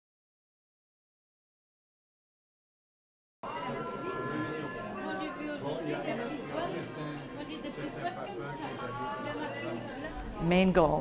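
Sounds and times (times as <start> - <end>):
many people talking: 3.4 - 11.0.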